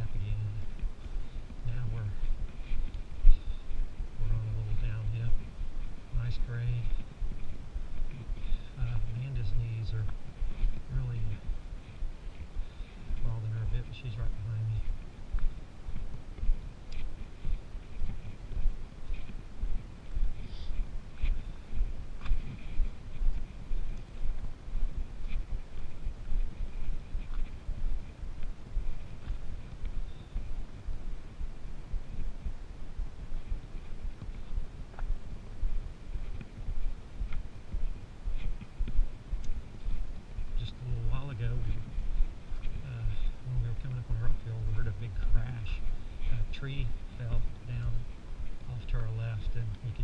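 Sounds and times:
footsteps on dirt trail: 0.0 - 50.0.

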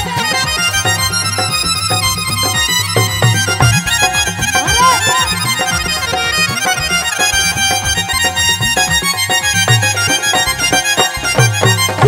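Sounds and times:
sustained melody line: 0.0 - 12.0
repeating drum beat: 0.9 - 7.2.

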